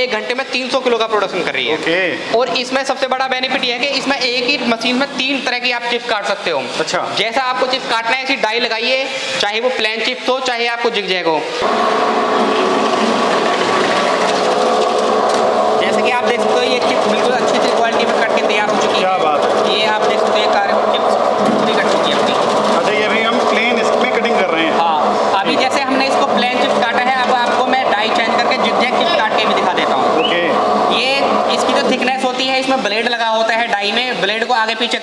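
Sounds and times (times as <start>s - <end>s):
people talking: 0.0s - 11.5s, 15.8s - 35.0s
slicing machine motor hum: 11.6s - 32.9s.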